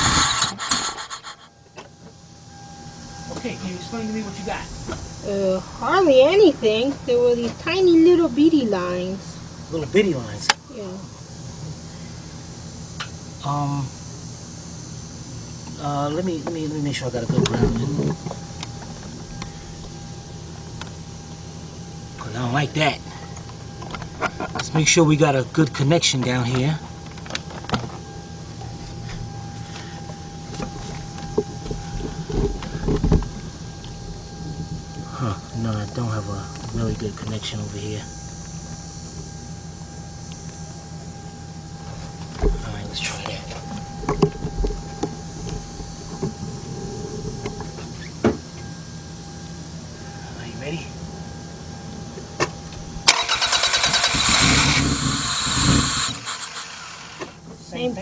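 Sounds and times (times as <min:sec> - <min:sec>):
car starter cranking engine: 0:00.0 - 0:01.5, 0:53.0 - 0:57.4
thin high-pitched tone: 0:02.4 - 0:06.5.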